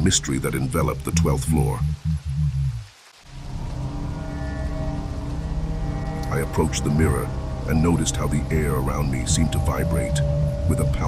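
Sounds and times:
eerie drone over low rumble: 0.0s - 11.0s
low bass swell: 1.0s - 11.0s.

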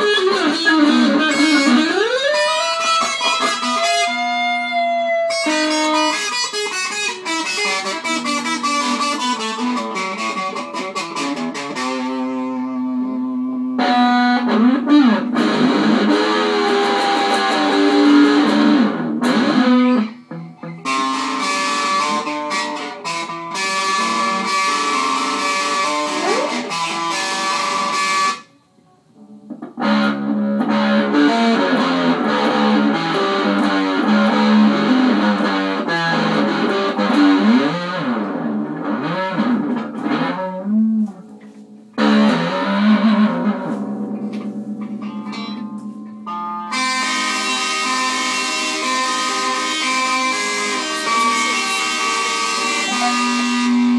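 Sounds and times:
electric guitar riffs: 0.0s - 53.9s.

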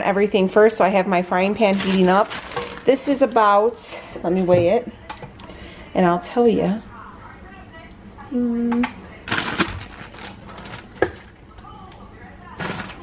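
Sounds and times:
plastic bag rustling: 1.6s - 3.8s, 9.2s - 11.7s, 12.5s - 13.0s.

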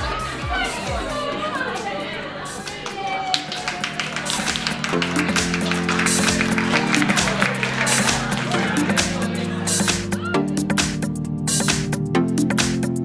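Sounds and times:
music of held chords: 0.0s - 13.0s
small group clapping: 1.8s - 10.2s.

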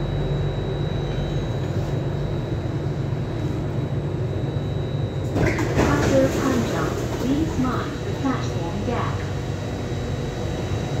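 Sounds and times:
train air-conditioning hum and hiss: 0.0s - 11.0s.

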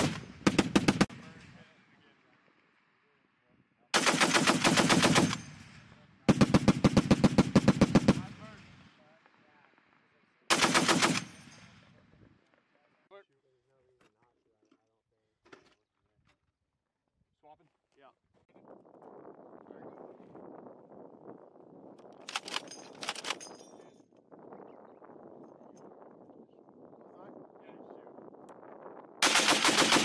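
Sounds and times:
rolling echo of gunfire: 0.0s - 1.8s, 4.0s - 9.0s, 10.5s - 11.9s, 29.2s - 30.0s
machine gun bursts: 10.5s - 11.4s, 29.2s - 30.0s.

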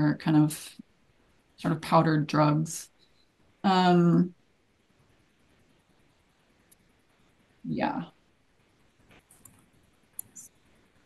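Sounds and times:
soft clicks: 6.6s - 6.9s, 9.0s - 10.7s.

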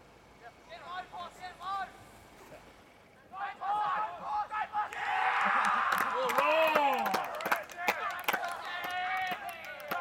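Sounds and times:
long drawn-out yell: 3.3s - 10.0s
spectators shouting and cheering: 3.4s - 10.0s.

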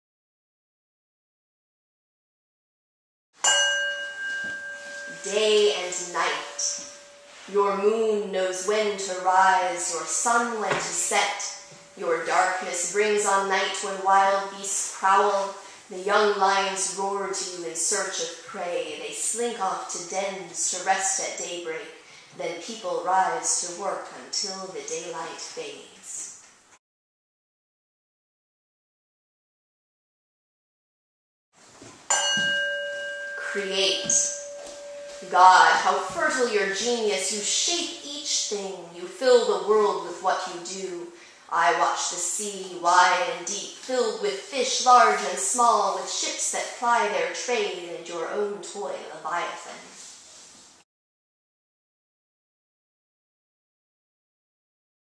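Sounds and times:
bell ringing: 3.4s - 7.5s, 32.1s - 35.9s.

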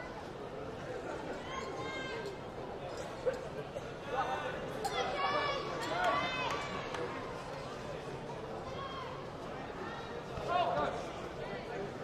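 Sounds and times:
sports hall hubbub: 0.0s - 12.0s.

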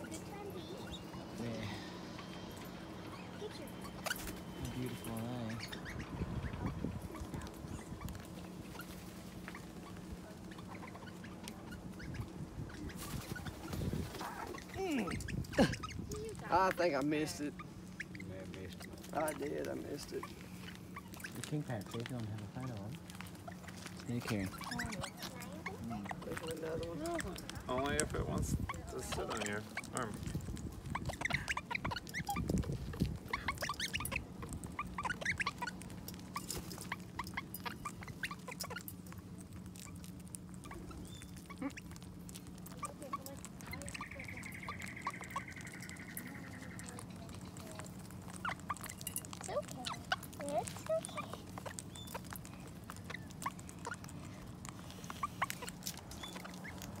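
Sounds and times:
birds pecking and cracking seed: 0.0s - 57.0s
parrots chirping: 0.0s - 57.0s.

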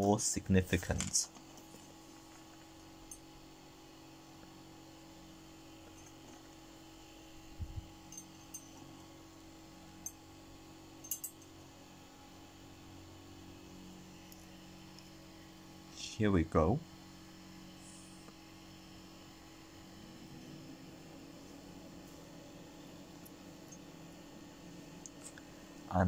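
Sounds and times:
low hum: 0.0s - 26.0s.

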